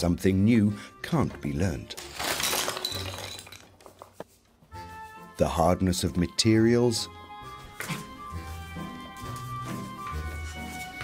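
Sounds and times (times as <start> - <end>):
plastic pens clattering onto floor: 1.9 - 4.2.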